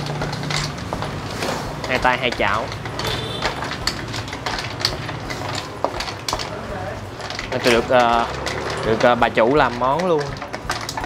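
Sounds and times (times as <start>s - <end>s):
snail shells clattering in a wok: 0.0s - 11.0s
wooden spatula scraping: 0.0s - 11.0s.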